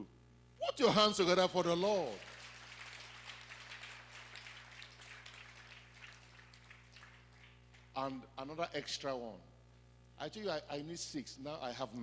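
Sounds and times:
congregation applauding: 1.6 - 8.1.

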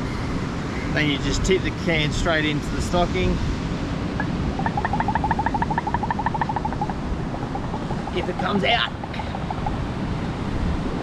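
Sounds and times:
wind noise: 2.7 - 11.0
bird trilling: 4.2 - 10.0.

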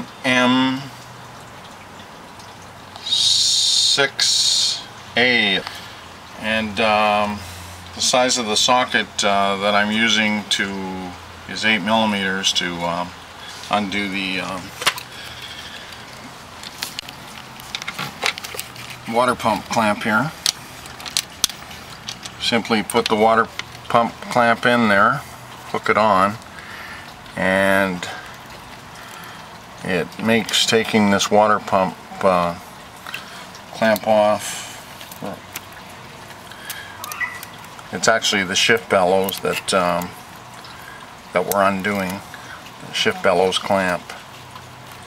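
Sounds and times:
faint steady hum: 0.0 - 45.0
man saying uh: 3.0 - 5.7, 13.7 - 14.7, 42.8 - 44.2
light clicks and taps: 14.8 - 24.4.

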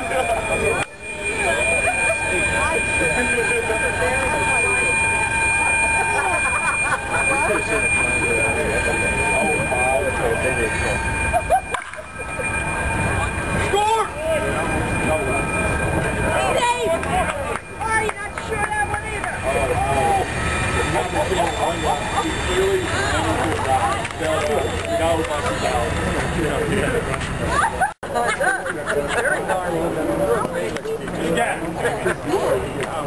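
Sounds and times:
steady high whine: 0.0 - 28.4
people chattering: 0.0 - 33.0.

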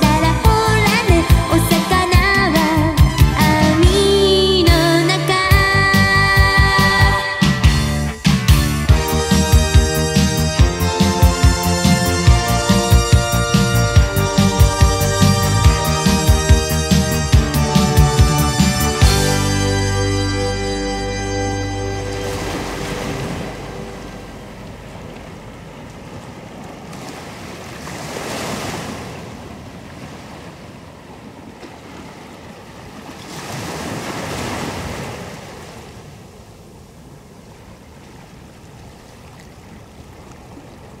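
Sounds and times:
song: 0.0 - 25.6
ocean waves washing onto shore: 21.8 - 41.0.

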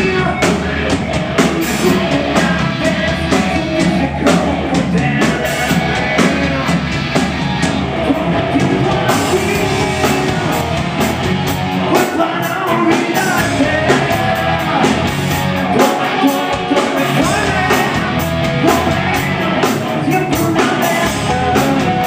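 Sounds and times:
man singing: 0.0 - 7.0, 7.9 - 11.2, 11.8 - 22.0
drum kit: 0.0 - 22.0
electric guitars: 0.0 - 22.0.

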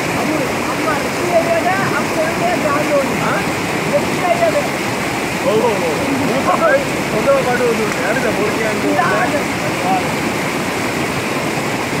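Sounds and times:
stream rushing over rocks: 0.0 - 12.0.

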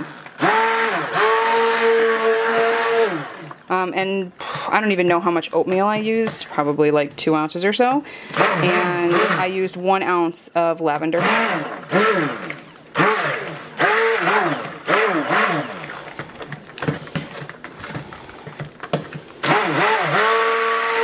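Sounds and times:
stick blender motor whining: 0.0 - 3.8, 8.2 - 9.9, 11.0 - 21.0.

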